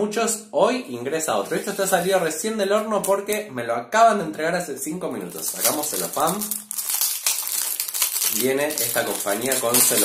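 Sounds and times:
cellophane wrap crinkling: 5.3s - 10.0s.

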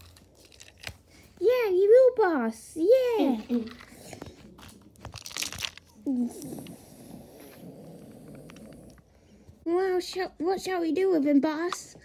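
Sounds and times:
plastic wrap crinkling: 0.0s - 1.5s, 3.2s - 6.5s.

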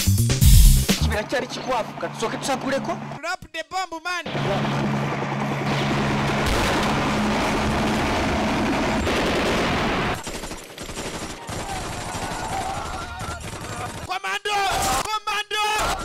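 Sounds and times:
scattered gunshots: 4.3s - 14.1s
rapid automatic gunfire: 4.4s - 14.1s.

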